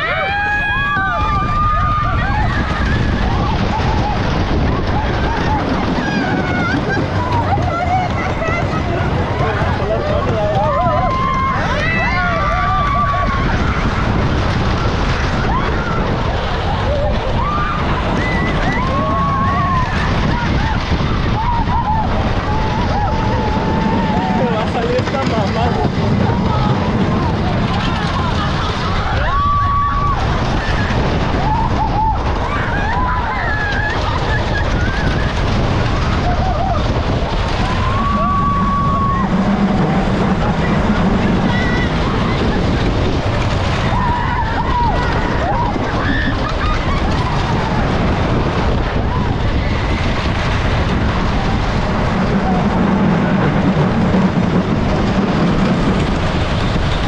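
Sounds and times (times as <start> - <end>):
riders screaming and yelling: 0.0 - 57.0
rumble of wind and train: 0.0 - 57.0.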